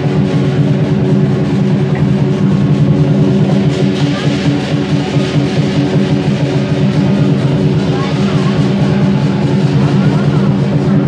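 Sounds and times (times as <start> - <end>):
hand cymbals: 0.0 - 11.0
large drum beating: 0.0 - 11.0.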